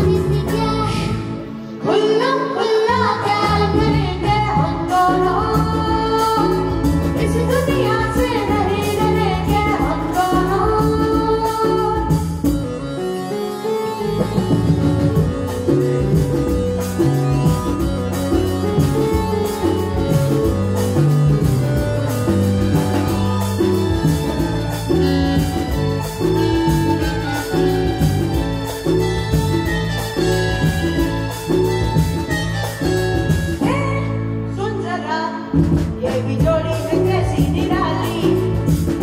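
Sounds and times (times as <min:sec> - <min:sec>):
bass guitar line: 0:00.0 - 0:01.6, 0:02.9 - 0:34.8, 0:35.6 - 0:39.0
child singing: 0:00.0 - 0:06.6
keyboards: 0:00.0 - 0:39.0
live band playing: 0:00.0 - 0:39.0
tabla: 0:03.1 - 0:34.3
drum beat with cymbals: 0:14.1 - 0:33.7, 0:35.6 - 0:39.0.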